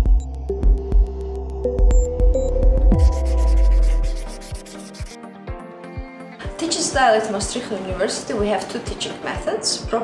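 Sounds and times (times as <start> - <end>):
background music: 0.0 - 10.0
marker rubbing on whiteboard: 3.0 - 5.2.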